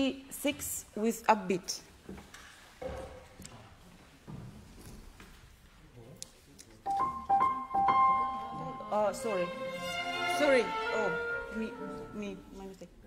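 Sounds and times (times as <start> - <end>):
small orchestra with piano: 6.8 - 12.6.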